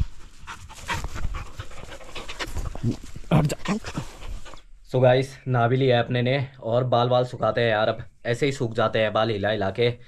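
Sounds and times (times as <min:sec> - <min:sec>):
dogs panting: 0:00.0 - 0:04.8.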